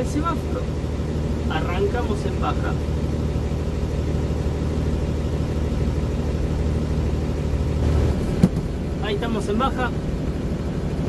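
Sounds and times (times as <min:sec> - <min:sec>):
diesel truck engine running: 0:00.0 - 0:11.0.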